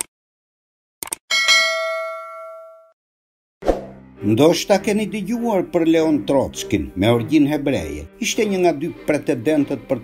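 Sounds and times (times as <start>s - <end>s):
bright bell ding: 1.3s - 3.0s.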